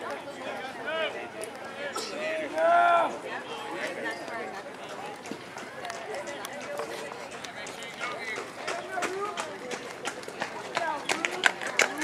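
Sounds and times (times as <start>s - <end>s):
chatter of spectators: 0.0s - 12.0s.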